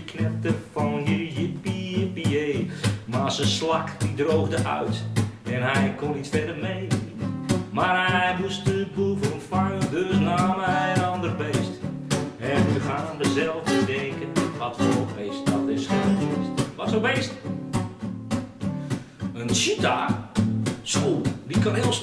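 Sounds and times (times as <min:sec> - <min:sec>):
man singing: 0:00.0 - 0:17.5, 0:19.3 - 0:22.0
acoustic guitar strumming: 0:00.0 - 0:22.0.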